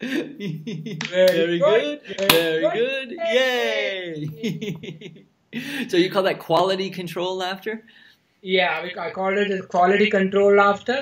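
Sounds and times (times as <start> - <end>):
men laughing loudly: 0.0 - 1.1, 2.2 - 5.8.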